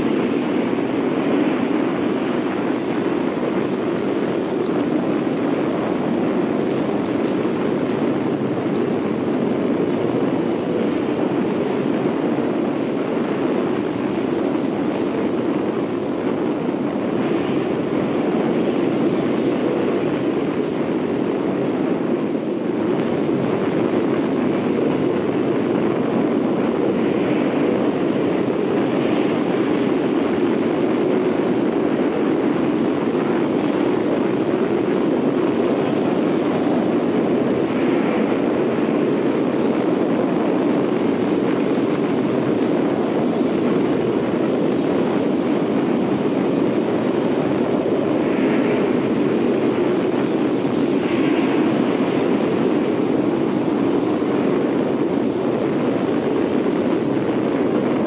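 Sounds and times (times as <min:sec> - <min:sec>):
tornado wind rushing: 0:00.0 - 0:58.0.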